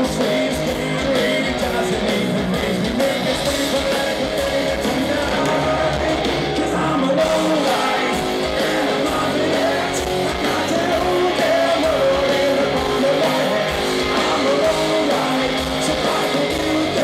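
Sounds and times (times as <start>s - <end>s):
electric guitars: 0.0s - 17.0s
lead vocal singing: 0.0s - 17.0s
live rock band: 0.0s - 17.0s.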